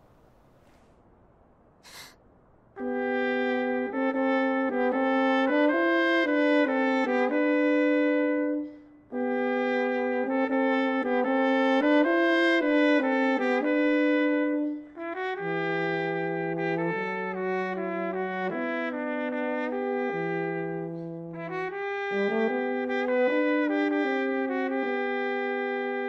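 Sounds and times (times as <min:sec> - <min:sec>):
solo trumpet melody: 0:02.8 - 0:26.0.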